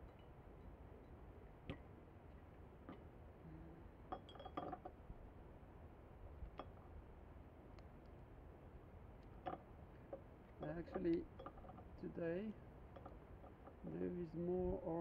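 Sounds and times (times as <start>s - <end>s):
glass jars clinking: 4.1s - 4.8s.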